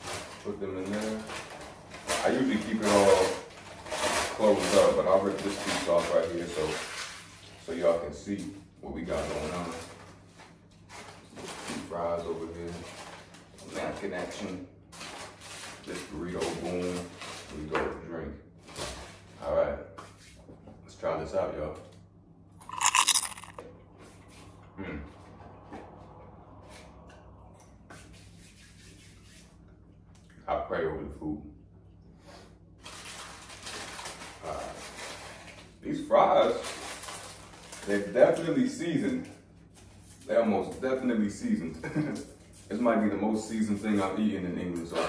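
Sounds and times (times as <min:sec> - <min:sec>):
paper wrappers rustling: 0:32.8 - 0:35.7, 0:36.5 - 0:38.0.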